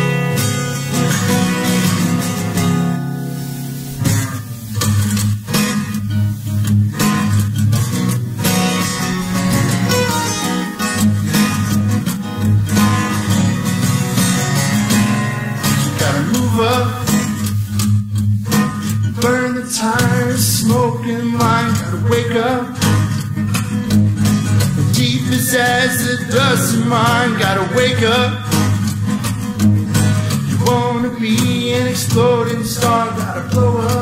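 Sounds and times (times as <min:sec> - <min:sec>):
acoustic guitar strumming: 0:00.0 - 0:34.0.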